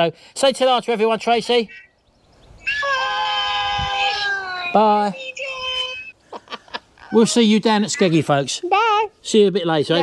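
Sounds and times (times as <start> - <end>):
toddler's high-pitched vocal sound: 2.7 - 4.8.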